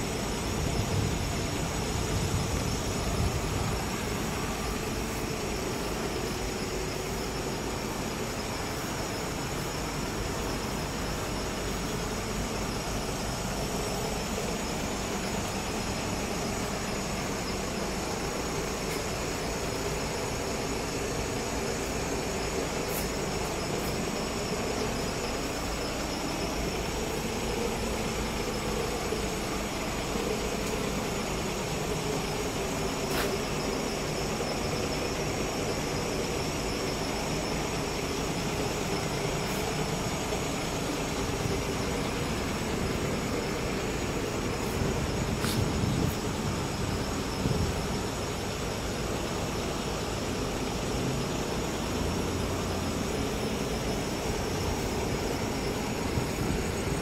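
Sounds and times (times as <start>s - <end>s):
constant hiss: 0.0s - 57.0s
vehicle engine noise: 0.0s - 57.0s.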